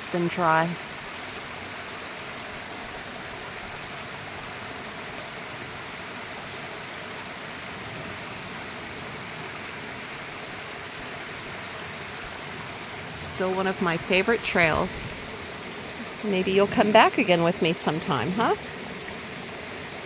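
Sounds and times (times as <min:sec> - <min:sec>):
water splashing over rocks: 0:00.0 - 0:20.0.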